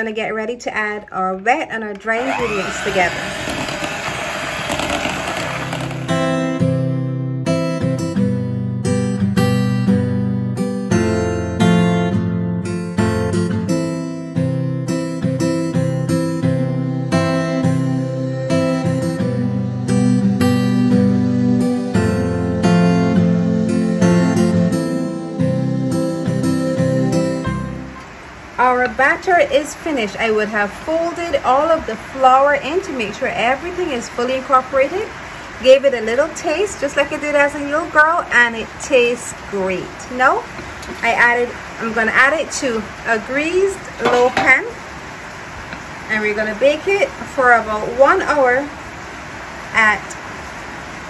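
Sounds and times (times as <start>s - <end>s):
electric hand mixer beating: 2.1s - 6.2s
acoustic guitar music: 5.1s - 29.0s, 43.6s - 44.8s.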